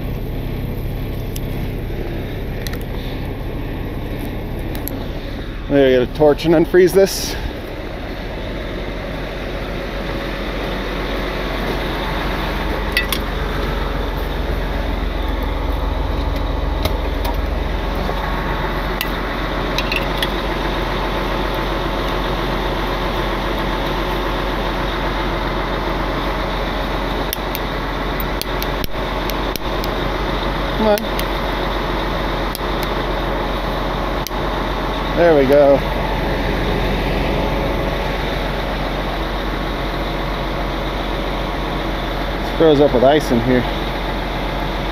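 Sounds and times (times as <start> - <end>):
diesel engine idling: 0.0 - 44.9.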